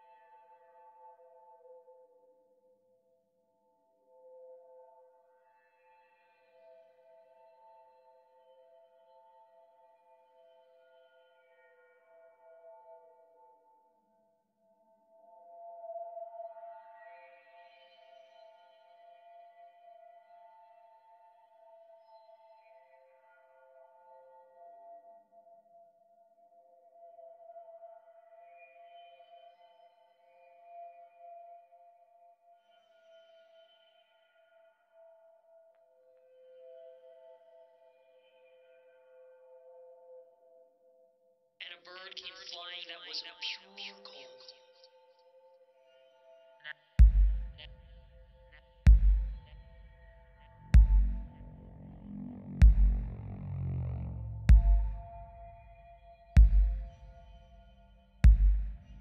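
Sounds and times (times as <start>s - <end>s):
faint high synth tones: 45.9s - 59.0s
sustained synth chord: 48.9s - 57.6s.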